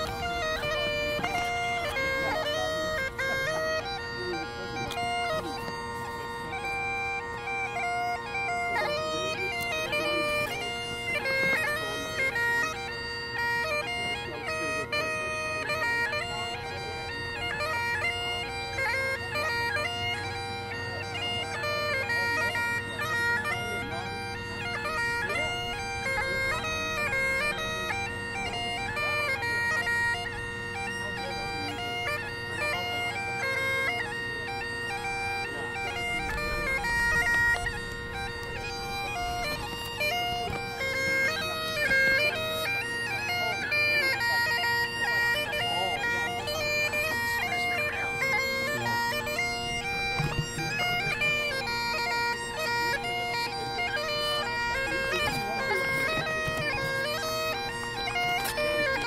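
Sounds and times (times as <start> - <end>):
bagpipe chanter melody: 0.0 - 59.0
bagpipe drones: 0.0 - 59.0.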